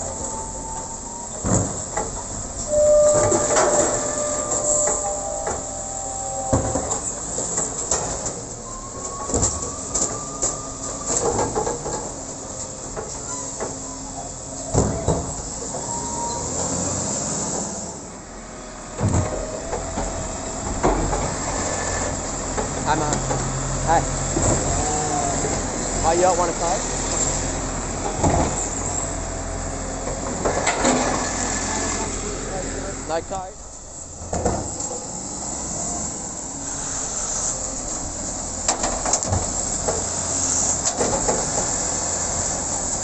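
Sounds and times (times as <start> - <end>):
hydraulic whine: 0.2 - 7.8
metallic clunks of bin and arm: 1.4 - 12.2.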